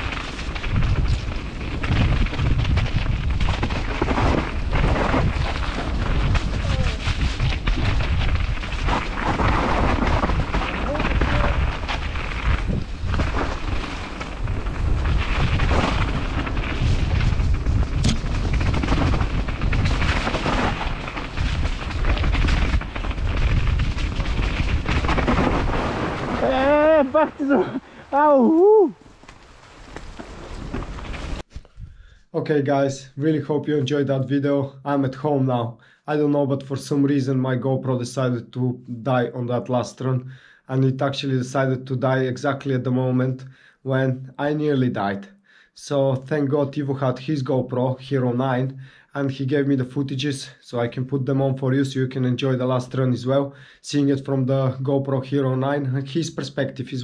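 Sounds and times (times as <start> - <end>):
bike tyres on dirt: 0.0 - 31.8
wind on microphone: 0.6 - 29.1.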